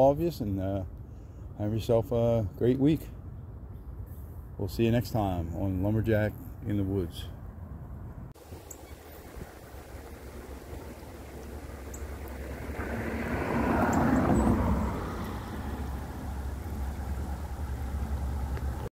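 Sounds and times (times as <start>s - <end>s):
steady low rumble: 3.2s - 18.9s
car passing by: 9.5s - 18.9s.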